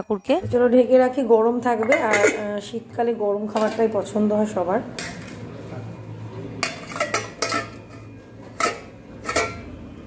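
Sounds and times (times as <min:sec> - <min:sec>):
steel pots clanking: 0:00.0 - 0:02.8, 0:03.4 - 0:04.2, 0:06.5 - 0:10.0.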